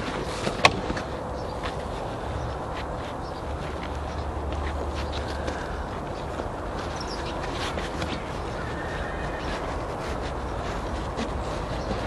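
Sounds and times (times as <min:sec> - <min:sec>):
low background noise: 0:00.0 - 0:12.0
nylon webbing rustling: 0:00.0 - 0:12.0.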